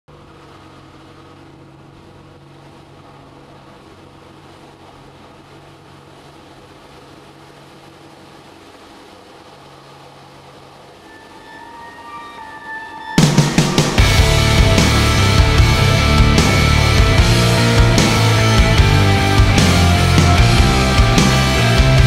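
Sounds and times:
plane engine drone in cockpit: 0.1 - 22.0
music with higher tones: 11.0 - 22.0.

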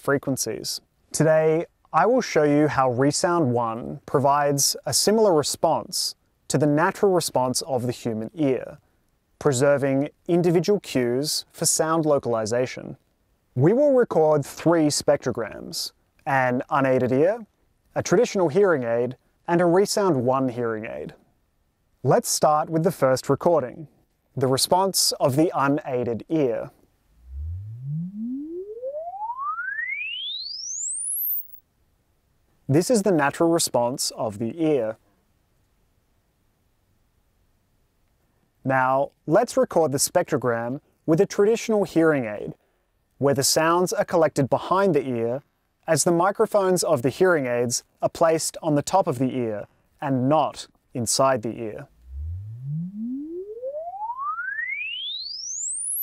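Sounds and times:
rising sine-wave test tone: 27.1 - 31.6, 51.9 - 56.0.

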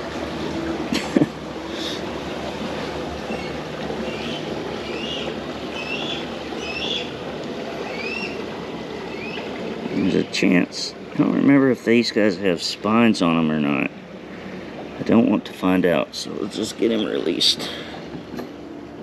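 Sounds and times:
motorboat engine rumble: 0.0 - 19.0.

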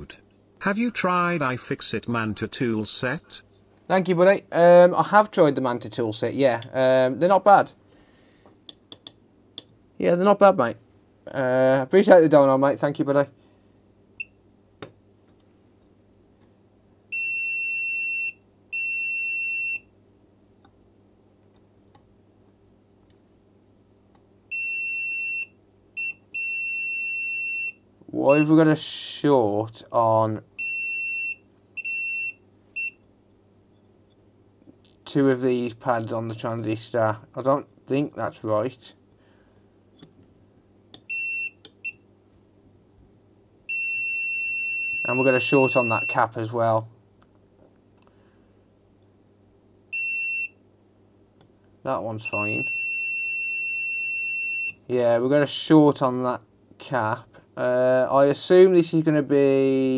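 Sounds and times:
probe tips clicking: 8.7 - 9.7
multimeter continuity beep: 24.5 - 28.6, 30.6 - 33.0, 41.0 - 42.0, 43.7 - 46.3, 50.0 - 50.6, 52.2 - 54.8.

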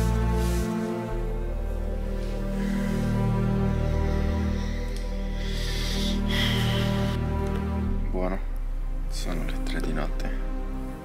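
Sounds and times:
steady low bass: 0.0 - 11.0
sustained background music: 0.0 - 11.0.

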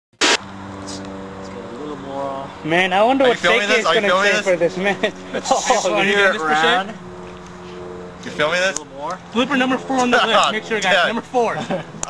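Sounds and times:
sharp pop: 0.2 - 0.5.

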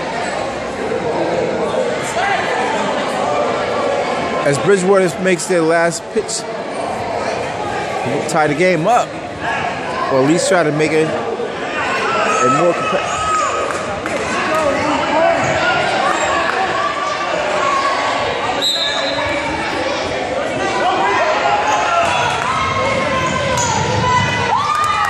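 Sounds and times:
crowd shouting and calling: 0.0 - 25.0
referee's whistle blast: 18.6 - 19.2.

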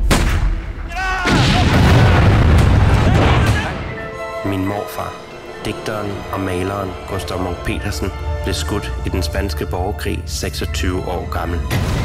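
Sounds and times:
explosion boom: 0.0 - 4.0.

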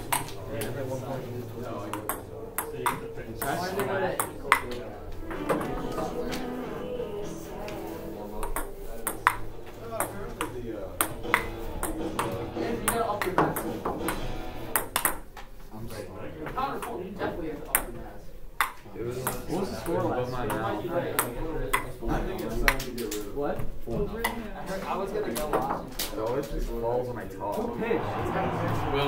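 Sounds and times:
ping-pong ball clicking off paddles: 1.9 - 4.8.

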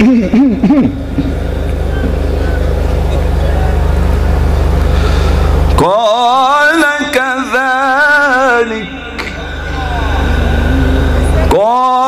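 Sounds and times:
loud low engine drone: 0.0 - 12.0.

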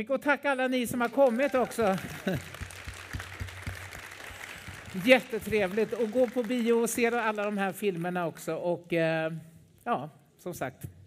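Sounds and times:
audience applauding: 0.9 - 8.2.

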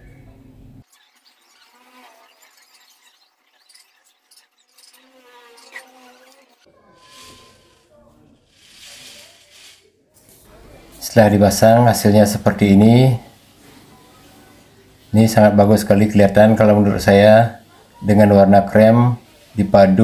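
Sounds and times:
faint voices: 6.6 - 20.0.

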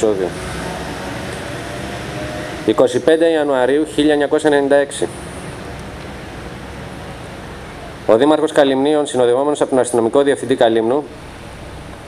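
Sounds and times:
man speaking: 0.0 - 0.4, 2.6 - 5.2, 8.1 - 11.2.

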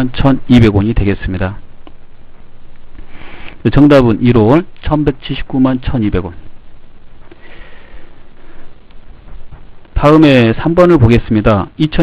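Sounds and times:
microphone hiss: 0.0 - 12.0
breath through the nose: 3.0 - 3.6.

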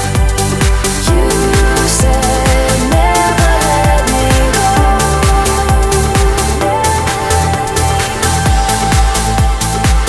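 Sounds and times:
trance music: 0.0 - 10.0.

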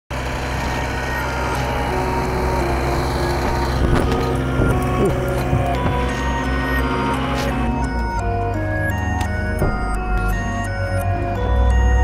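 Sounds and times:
diesel engine running: 0.1 - 12.0.

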